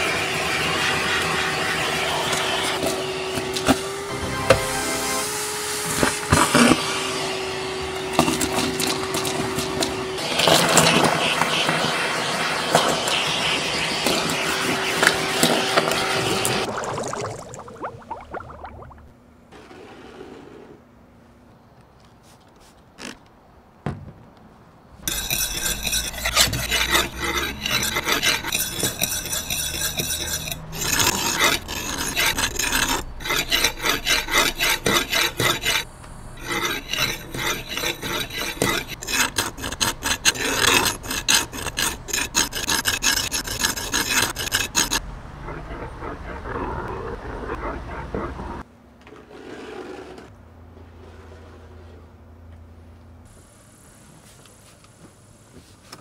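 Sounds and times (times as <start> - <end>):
paper towel rubbing on glass: 25.1 - 35.8.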